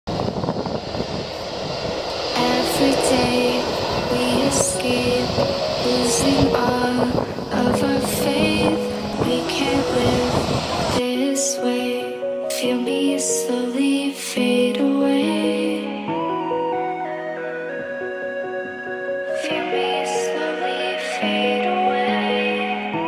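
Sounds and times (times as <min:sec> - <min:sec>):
jet engines of taxiing airliner: 0:00.1 - 0:11.0
gentle background music: 0:02.1 - 0:23.0.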